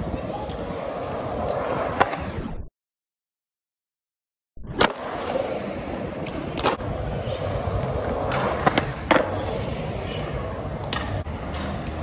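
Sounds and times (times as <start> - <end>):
wheels rolling on concrete: 0.0 - 2.4, 4.8 - 12.0.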